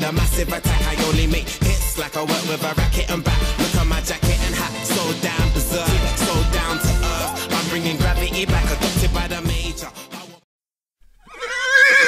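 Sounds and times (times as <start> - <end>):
horse whinnying: 11.2 - 12.0.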